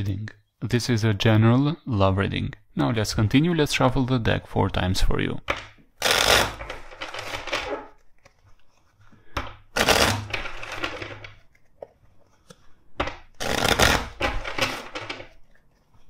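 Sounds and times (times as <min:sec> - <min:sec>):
cards being shuffled: 0:05.6 - 0:16.0.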